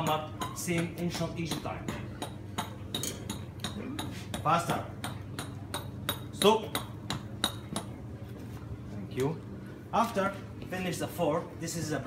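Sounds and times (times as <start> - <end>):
hammer tapping stone: 0.0 - 8.0.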